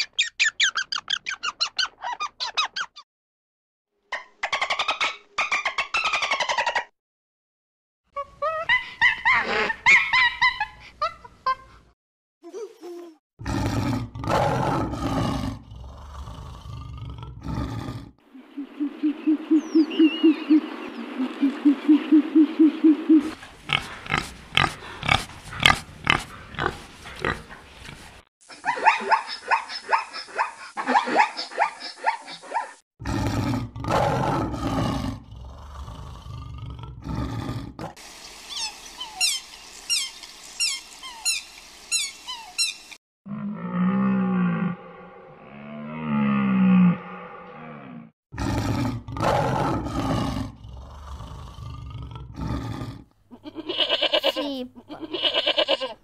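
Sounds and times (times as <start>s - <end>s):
rapid clicking and chirping calls: 38.2s - 43.0s.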